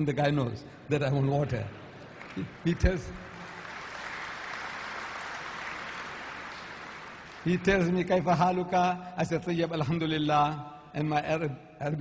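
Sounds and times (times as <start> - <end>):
audience applauding: 1.9 - 8.0.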